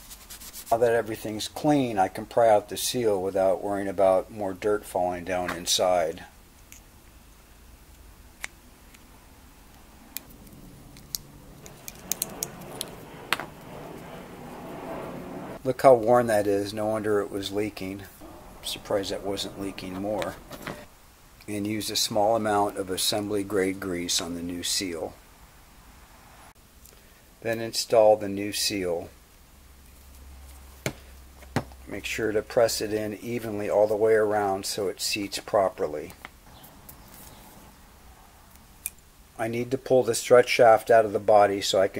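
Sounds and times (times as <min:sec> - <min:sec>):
low steady hum: 0:00.7 - 0:40.1
metal pick clicking and scraping: 0:09.7 - 0:13.5.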